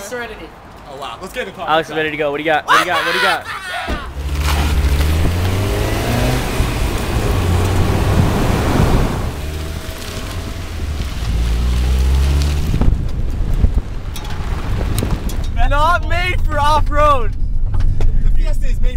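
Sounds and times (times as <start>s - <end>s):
tyre and wind rush: 3.9s - 18.9s
car engine running: 4.2s - 14.0s.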